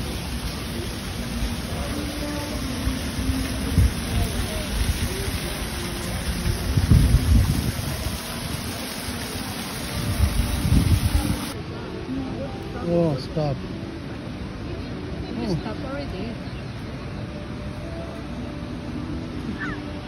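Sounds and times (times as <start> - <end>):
wind buffeting microphone: 6.1 - 8.7, 9.9 - 11.6.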